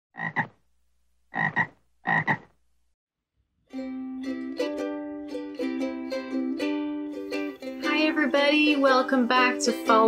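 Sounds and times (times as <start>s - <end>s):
frog ribbiting: 0.2s - 0.6s, 1.3s - 2.6s
plucked ukulele music: 3.6s - 10.0s.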